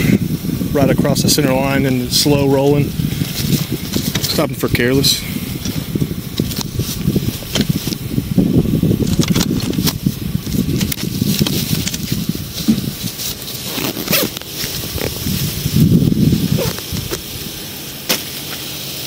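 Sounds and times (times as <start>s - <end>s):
rustling: 1.3s - 19.0s.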